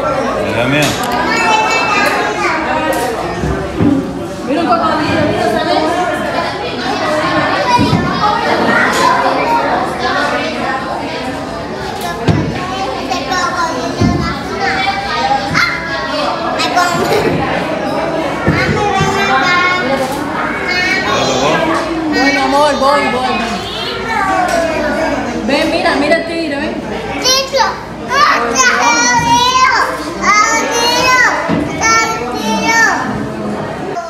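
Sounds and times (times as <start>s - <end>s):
young children chattering: 0.0s - 34.0s.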